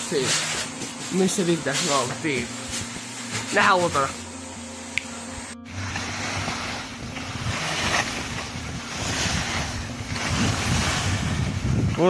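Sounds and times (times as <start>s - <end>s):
skis sliding over snow: 0.0s - 4.1s, 5.7s - 11.9s
wind buffeting microphone: 6.8s - 12.0s.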